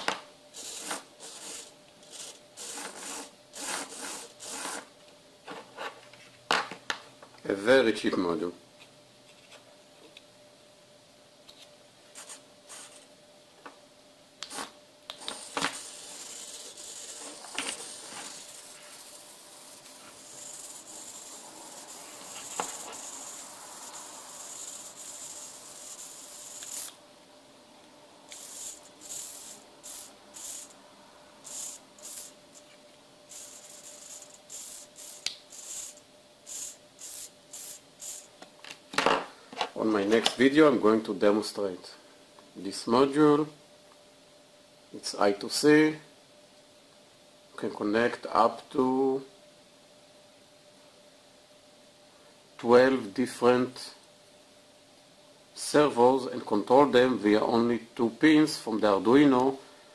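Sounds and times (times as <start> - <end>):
faint steady hum: 0.0 - 59.9.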